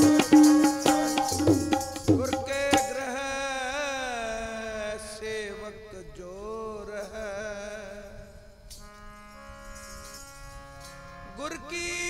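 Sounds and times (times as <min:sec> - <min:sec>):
harmonium holding a chord: 0:00.0 - 0:02.8, 0:08.8 - 0:12.0
men singing: 0:00.0 - 0:08.1.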